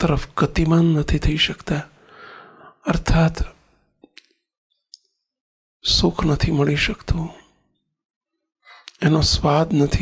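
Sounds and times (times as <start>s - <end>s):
man speaking: 0.0s - 1.9s, 2.8s - 3.6s, 5.8s - 7.4s, 8.9s - 10.0s
breathy intake of breath: 2.0s - 2.8s.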